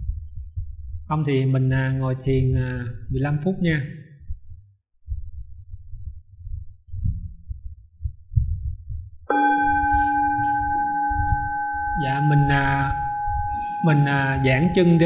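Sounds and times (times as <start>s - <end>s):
low rumbling thumps: 0.0s - 1.2s, 4.2s - 15.0s
singing bowl ringing: 9.3s - 15.0s.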